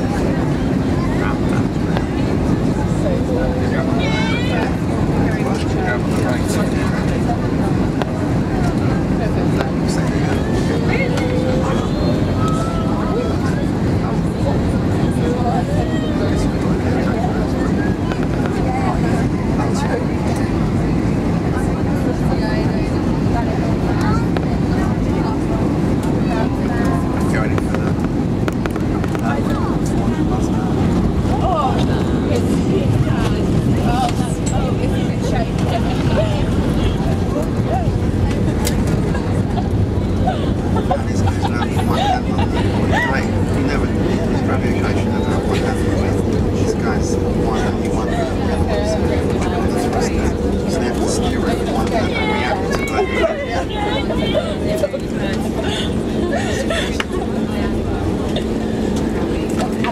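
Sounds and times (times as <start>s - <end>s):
airliner cabin engine noise: 0.0s - 59.9s
passengers chattering: 0.0s - 59.9s.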